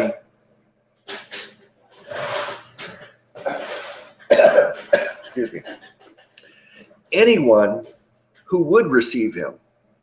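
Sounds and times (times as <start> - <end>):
man coughing: 3.4 - 5.8.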